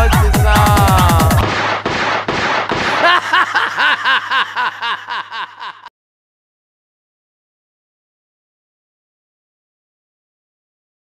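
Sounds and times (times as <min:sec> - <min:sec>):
dance song: 0:00.0 - 0:01.9
sharp shot-like bangs: 0:01.4 - 0:03.0.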